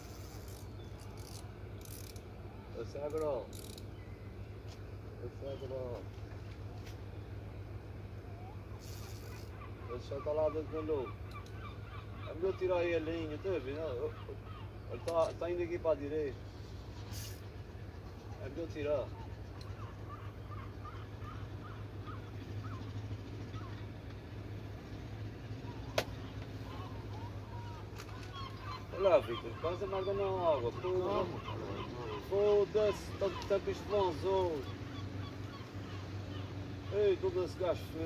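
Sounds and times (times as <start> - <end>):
low mechanical hum: 0.0 - 38.0
bird chirps: 0.1 - 2.1, 3.3 - 6.1, 16.3 - 24.0, 25.2 - 37.5
brief high hiss: 17.0 - 17.4.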